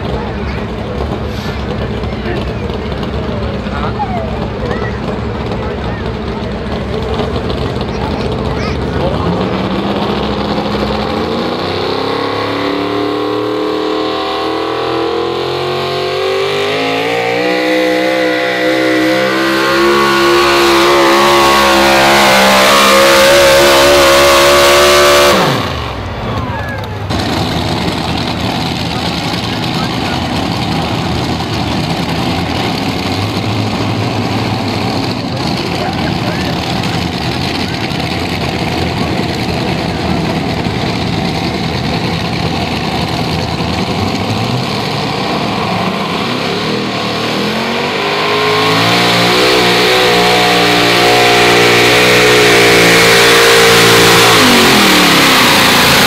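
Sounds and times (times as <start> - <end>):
low engine rumble: 0.0 - 56.0
truck engine under full load: 0.0 - 56.0.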